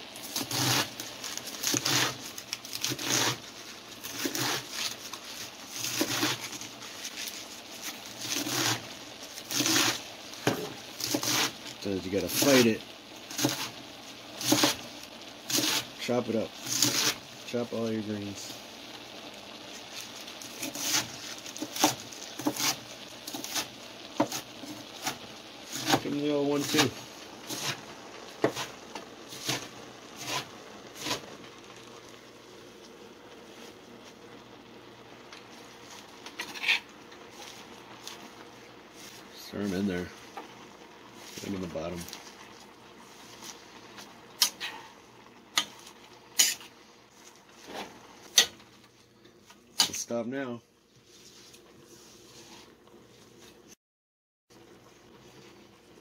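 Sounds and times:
leaves rustling: 0.0s - 34.1s
knife chopping on wooden board: 9.5s - 11.5s, 14.4s - 14.8s, 20.6s - 23.6s, 25.0s - 26.0s, 28.4s - 28.7s.

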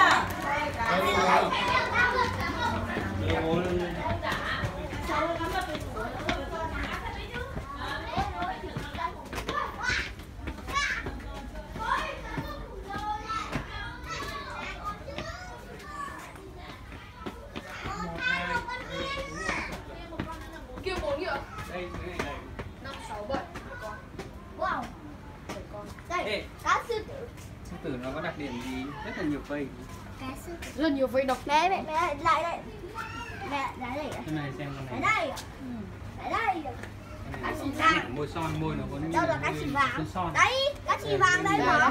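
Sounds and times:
children chattering: 0.0s - 41.9s
child's excited high call: 31.9s - 34.0s.

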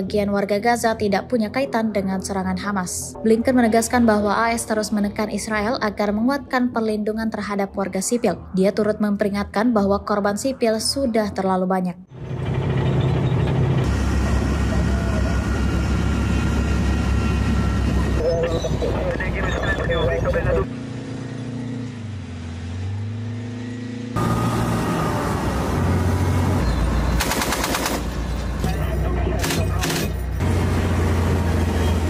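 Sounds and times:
tracked vehicles rumbling and clanking: 12.1s - 32.0s
voices: 14.5s - 15.9s, 18.0s - 20.7s, 28.5s - 30.3s
machine-gun fire burst: 27.2s - 28.1s.

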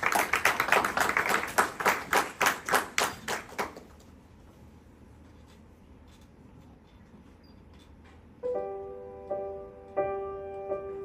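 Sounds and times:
audience applauding: 0.0s - 3.9s.

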